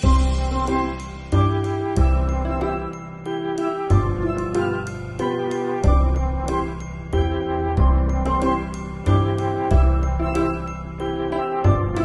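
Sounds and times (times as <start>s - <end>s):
tinkling background music: 0.0s - 12.0s.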